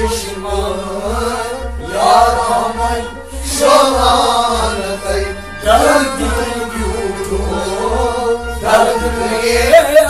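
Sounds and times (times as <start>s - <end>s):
instrumental accompaniment: 0.0s - 10.0s
man singing chant-like song: 0.0s - 10.0s.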